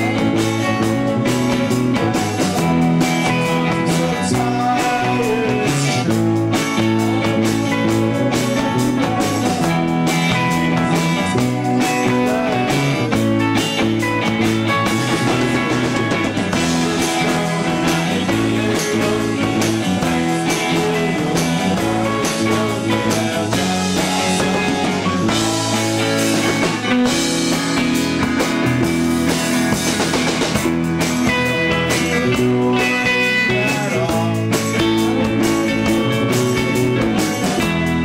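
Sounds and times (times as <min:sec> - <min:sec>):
drum kit: 0:00.0 - 0:38.0
electric guitars: 0:00.0 - 0:38.0.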